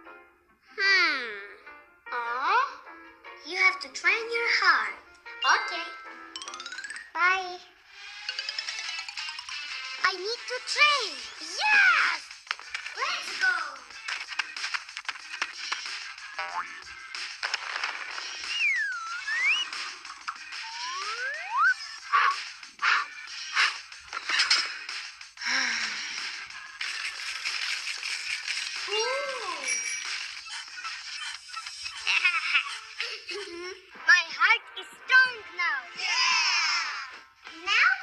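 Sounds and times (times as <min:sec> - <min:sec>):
cartoon background music: 0:00.0 - 0:38.0
whistle-like pitch glides: 0:18.5 - 0:19.8, 0:20.6 - 0:22.3.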